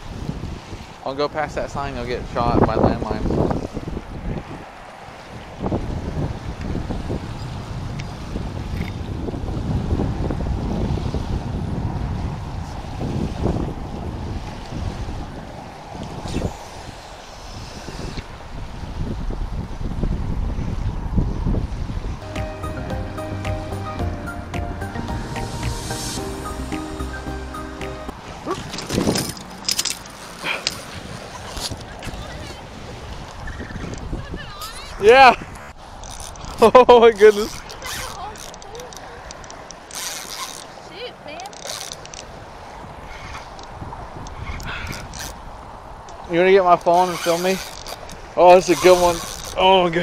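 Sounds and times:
wind buffeting microphone: 0.0s - 23.8s, 28.1s - 50.0s
sustained steady tones: 22.2s - 28.2s
distant road traffic: 22.2s - 50.0s.

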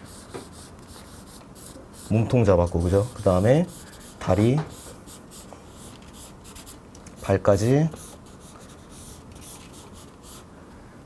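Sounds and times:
drawing tool scratching paper: 0.0s - 6.8s.

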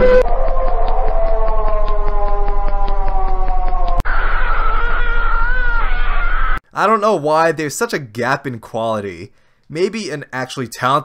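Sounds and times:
eerie droning tone: 0.0s - 6.6s
man speaking: 6.7s - 11.0s.

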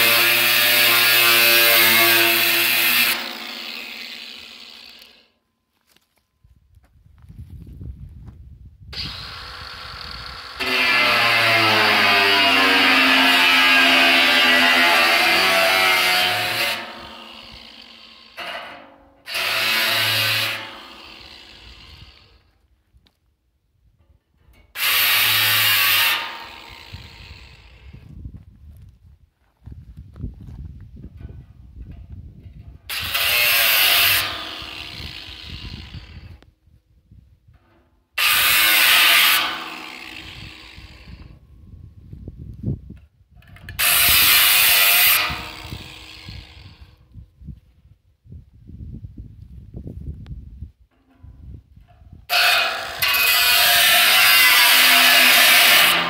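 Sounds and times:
angle grinder cutting metal: 0.0s - 5.3s, 9.0s - 22.5s, 24.7s - 27.9s, 32.9s - 36.4s, 38.2s - 41.3s, 43.7s - 46.8s, 52.3s - 56.0s
metal scraping and handling: 52.3s - 56.0s.

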